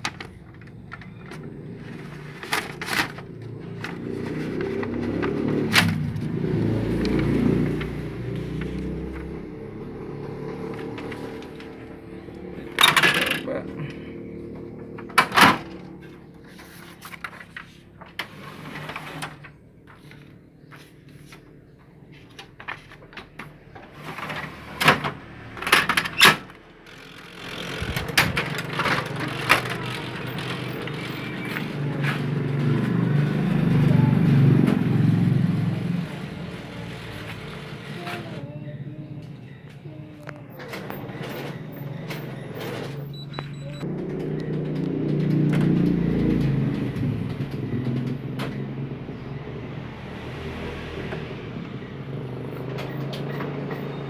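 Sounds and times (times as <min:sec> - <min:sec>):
copier motors and fans running: 0:26.6 - 0:54.0.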